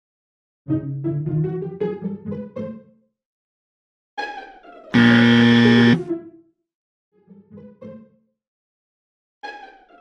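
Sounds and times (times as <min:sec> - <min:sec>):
low buzzer: 0:05.0 - 0:06.1.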